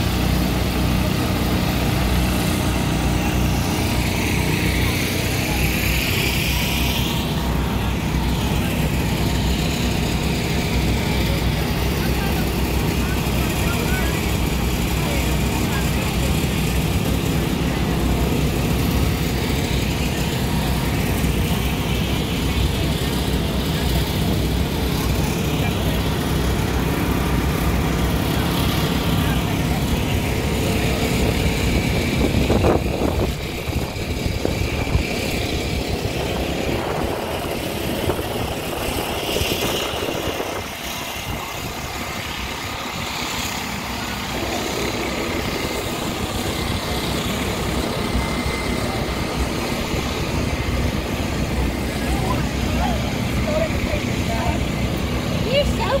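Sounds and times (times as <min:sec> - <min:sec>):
people talking: 0:00.0 - 0:56.0
steady outdoor rumble: 0:00.0 - 0:56.0.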